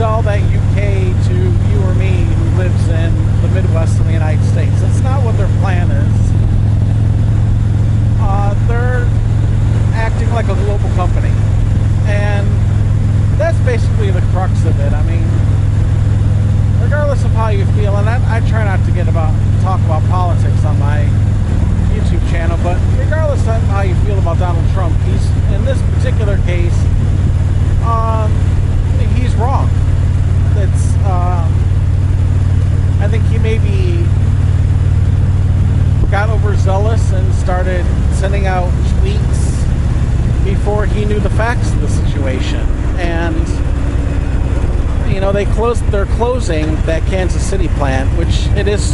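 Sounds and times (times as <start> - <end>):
man talking: 0.0 - 6.4, 8.2 - 9.2, 9.8 - 11.4, 12.0 - 12.7, 13.3 - 15.5, 16.7 - 21.2, 21.9 - 27.0, 27.8 - 29.8, 30.4 - 31.7, 32.9 - 34.2, 36.0 - 39.7, 40.4 - 43.7, 44.9 - 48.9
motorcycle engine droning: 0.0 - 48.9.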